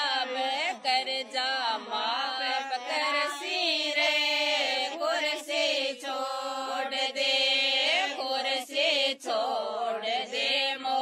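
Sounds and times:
women singing unaccompanied: 0.0s - 11.0s.

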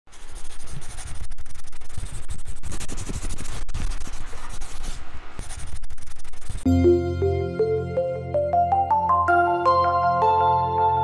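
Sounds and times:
pen scratching on paper: 0.1s - 6.7s.

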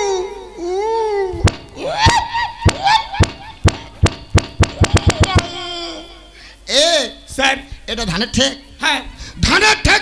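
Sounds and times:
high-pitched cries: 0.0s - 6.5s
sharp knocks: 1.4s - 5.7s.

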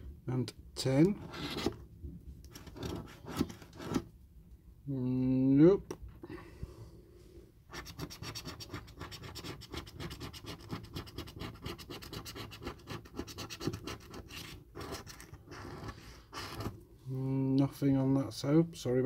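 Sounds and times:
coin scratching scratchcard: 7.7s - 16.8s.

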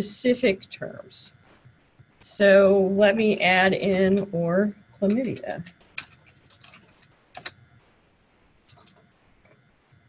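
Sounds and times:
typing on computer keyboard: 6.0s - 7.6s, 8.7s - 9.0s.

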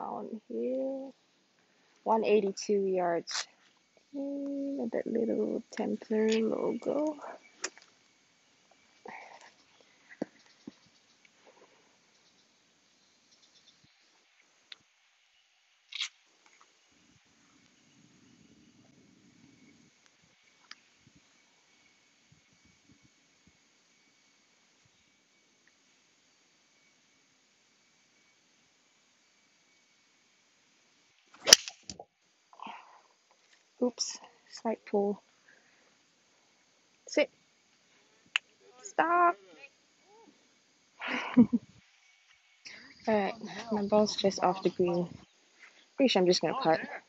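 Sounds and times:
faint high-pitched drone: 4.0s - 7.7s
golf club striking ball: 31.4s - 32.0s.

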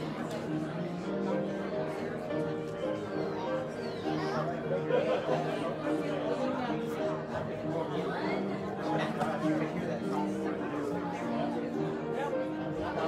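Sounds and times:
crowd chatting: 0.0s - 13.0s
quiet instrumental music: 0.0s - 13.0s.

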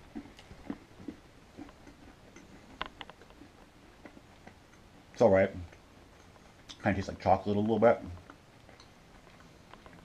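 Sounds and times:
chewing tablet crunching and clicking: 0.0s - 10.0s.

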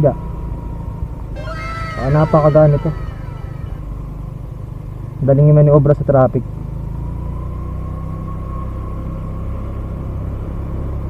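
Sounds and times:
wind: 0.0s - 11.0s
high squealing cry: 1.4s - 4.1s.

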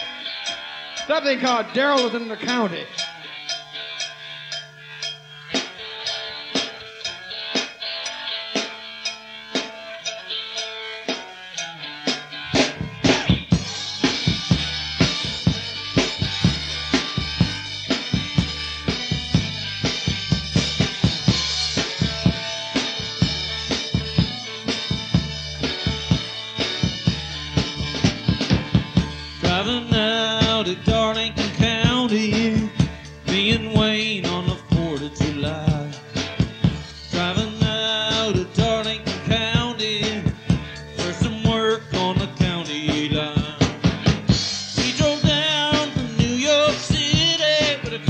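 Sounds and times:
driving bass line: 0.0s - 48.0s
drum kit beat: 0.0s - 48.0s
live band playing: 0.0s - 48.0s.

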